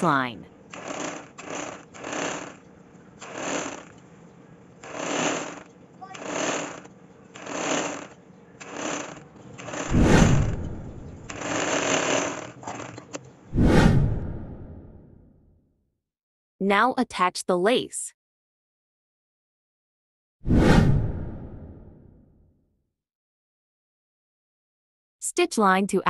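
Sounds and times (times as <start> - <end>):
sewing machine stitching: 0.7 - 4.1, 4.8 - 13.3.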